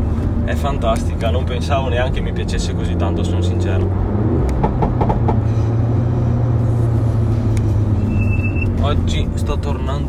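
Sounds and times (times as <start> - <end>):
car engine droning: 0.0 - 10.0
tyre and road noise: 0.0 - 10.0.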